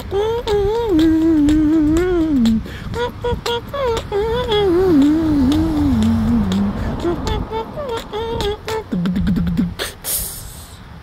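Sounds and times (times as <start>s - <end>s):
man humming: 0.0s - 10.8s.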